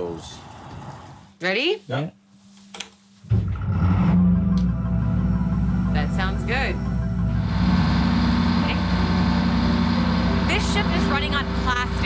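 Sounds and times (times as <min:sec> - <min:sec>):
boat engine idling: 0:04.2 - 0:12.0.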